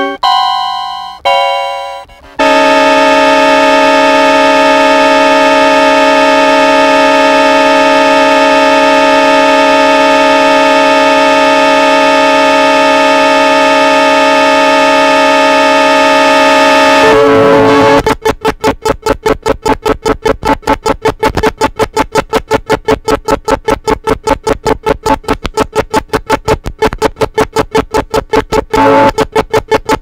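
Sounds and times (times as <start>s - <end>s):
keyboard buzzy drone chord: 1.8s - 30.0s.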